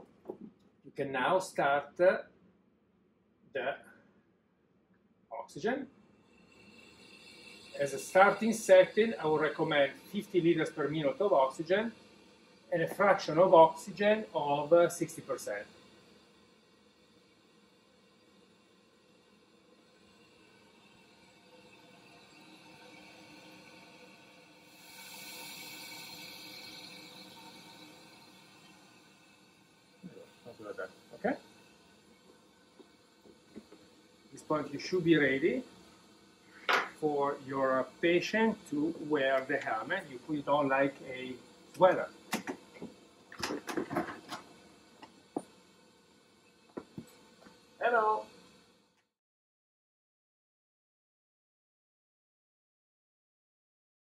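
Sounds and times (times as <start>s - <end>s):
oxygen hissing through tubing: 5.4s - 48.8s.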